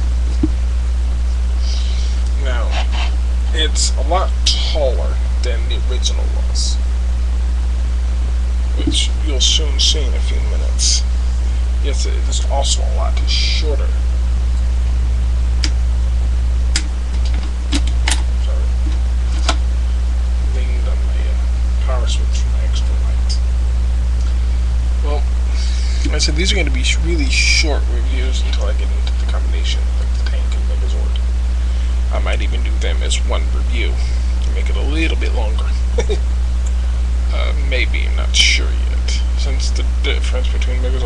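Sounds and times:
low electrical hum: 0.0s - 41.0s
faint hiss: 1.3s - 6.8s.

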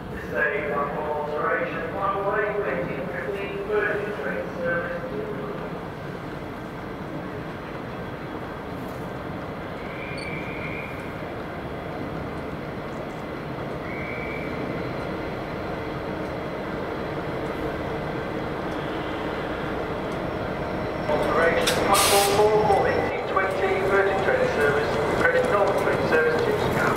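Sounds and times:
diesel locomotive engine rumbling: 0.0s - 26.9s.

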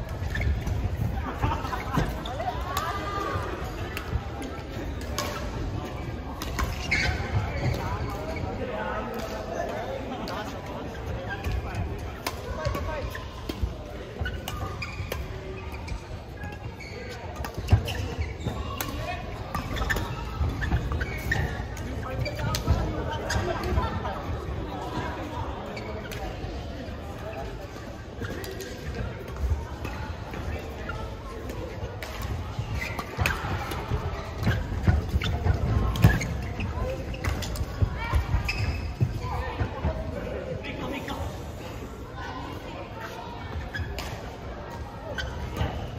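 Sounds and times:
shoes thudding and squeaking: 0.0s - 3.9s, 5.2s - 8.6s, 12.5s - 25.1s, 29.8s - 40.1s, 43.3s - 45.9s.

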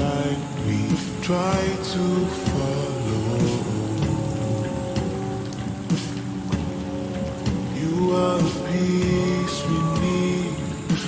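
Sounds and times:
layered vocal harmonies with reverb: 0.0s - 6.5s, 7.4s - 11.0s
steady hiss: 0.0s - 11.0s.

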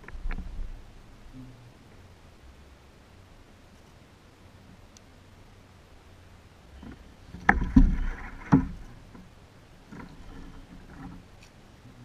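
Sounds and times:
net handle knocking on kayak hull: 6.8s - 8.8s.

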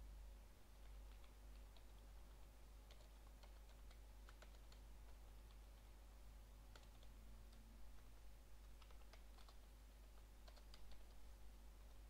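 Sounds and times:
faint keyboard typing: 0.6s - 12.0s.

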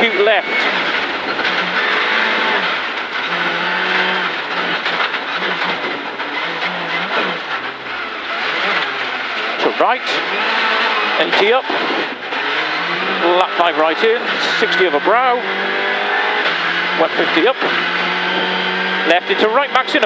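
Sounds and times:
co-driver calling: 0.0s - 20.0s
rally car engine revving: 0.0s - 20.0s.

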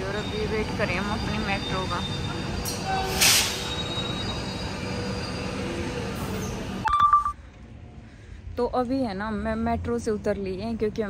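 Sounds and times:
wheels squealing: 0.0s - 6.8s
electric train rumble: 0.0s - 6.9s
short electronic beep: 6.8s - 7.4s.

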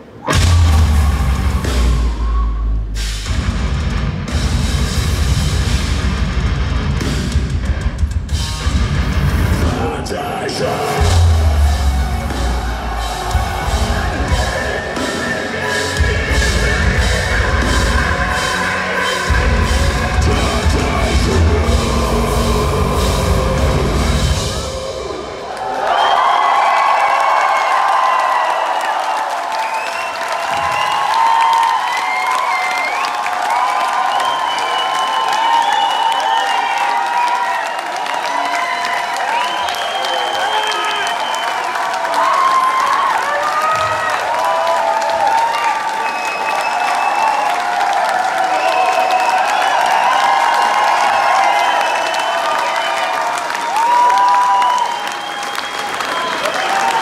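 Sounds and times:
crowd yelling and whooping: 0.0s - 3.4s, 8.3s - 57.0s
crowd applause: 3.2s - 57.0s.

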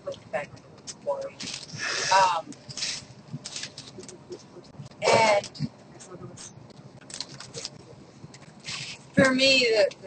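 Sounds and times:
faint rustling and scraping: 1.0s - 9.9s.

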